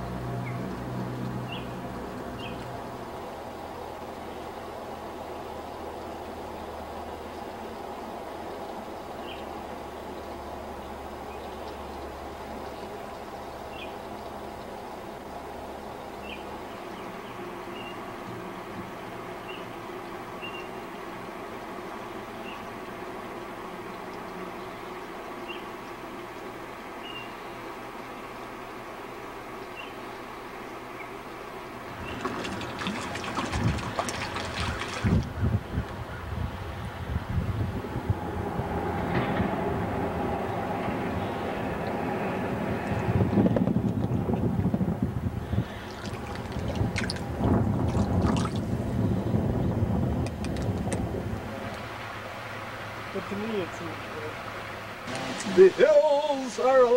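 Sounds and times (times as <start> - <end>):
steady background noise: 0.0 - 56.9
water splashing and sloshing: 31.2 - 36.0, 37.8 - 49.4, 50.0 - 56.9.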